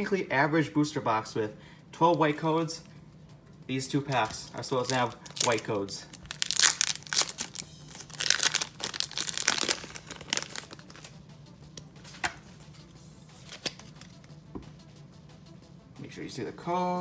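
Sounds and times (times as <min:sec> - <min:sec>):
foil wrapper crinkling: 0:04.1 - 0:11.2.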